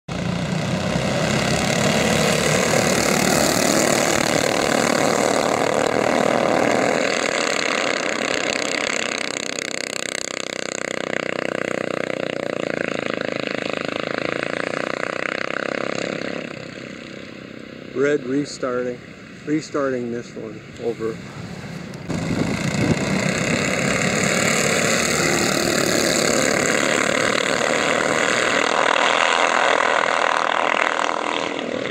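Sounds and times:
go-kart engines racing: 0.1 - 31.9.

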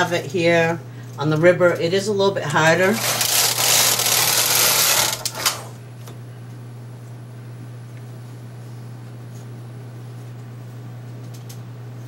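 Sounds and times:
knitting machine carriage clattering: 2.9 - 5.6
sharp clicks of carriage stopping: 3.0 - 5.7.

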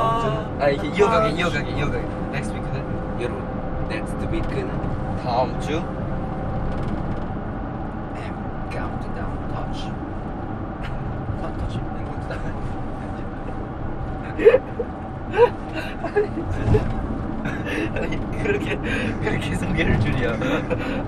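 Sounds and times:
vehicle rumble inside cabin: 0.0 - 21.0
people laughing: 14.3 - 16.9, 17.5 - 21.0.

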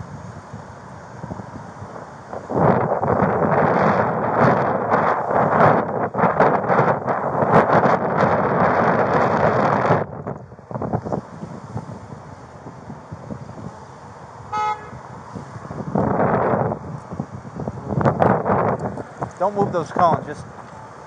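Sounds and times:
loud rushing noise on microphone: 0.0 - 21.0
car horn honk: 14.5 - 15.0.

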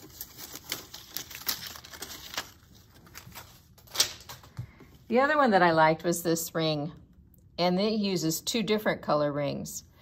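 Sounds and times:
paper strips rustling and crackling: 0.0 - 4.5.

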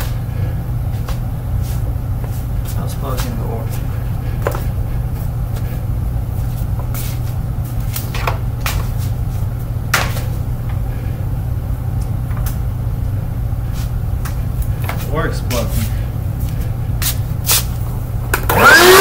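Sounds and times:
vacuum cleaner droning: 0.0 - 19.0.

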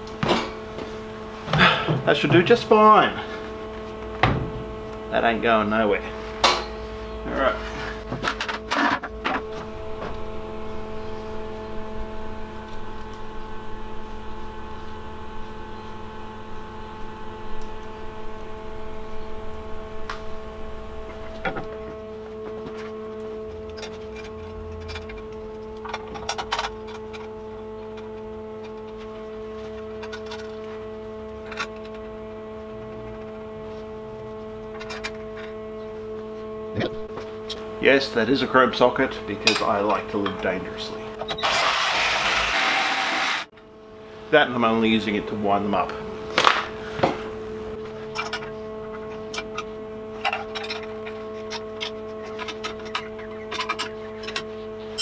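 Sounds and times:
steady shop hum: 0.0 - 55.0.

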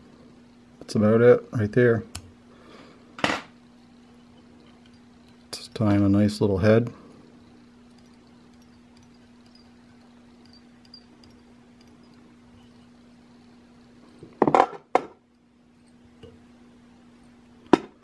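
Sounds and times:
low hum: 2.3 - 14.4.

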